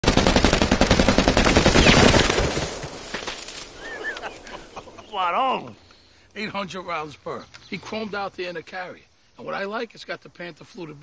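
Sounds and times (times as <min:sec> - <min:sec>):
gunshots echoing: 0:00.0 - 0:03.4.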